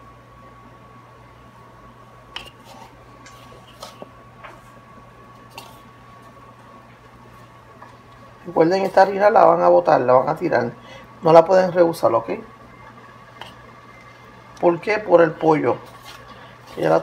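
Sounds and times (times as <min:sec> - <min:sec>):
faint hum: 0:00.0 - 0:17.0
soft squishing and rustling: 0:02.3 - 0:09.6, 0:12.8 - 0:17.0.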